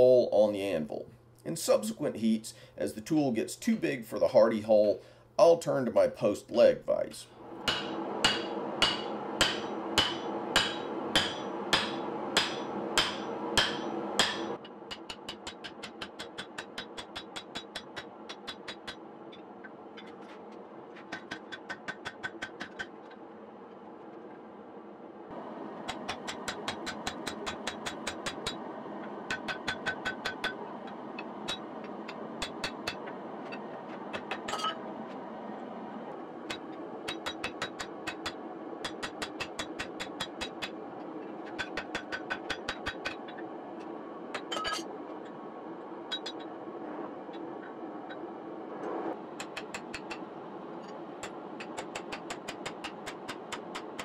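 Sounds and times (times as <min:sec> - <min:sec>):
gas forge rushing: 0:07.4 - 0:15.0, 0:25.3 - 0:43.4
hammer blows on steel: 0:07.6 - 0:19.0.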